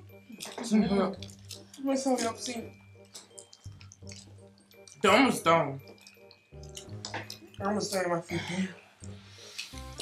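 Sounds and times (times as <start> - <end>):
mouth smacking and chewing: 0.2 - 5.1, 5.8 - 7.6, 9.0 - 10.0
fingers squishing food: 1.2 - 5.1, 5.8 - 7.6.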